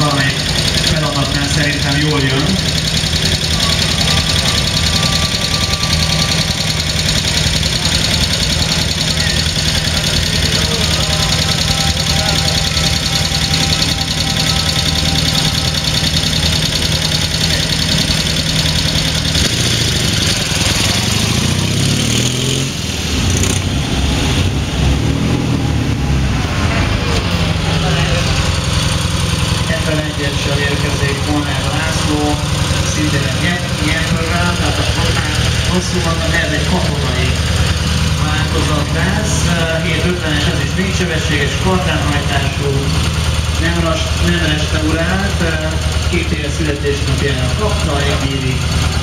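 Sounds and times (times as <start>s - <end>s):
motorcycle engine idling and revving: 0.0s - 49.0s.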